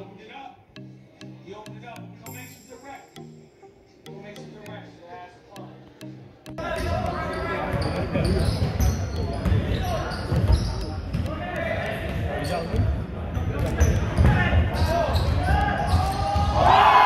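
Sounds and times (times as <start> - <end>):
echoing voices in a hall: 4.9 - 17.0
basketball bouncing on wooden floor: 6.8 - 14.4.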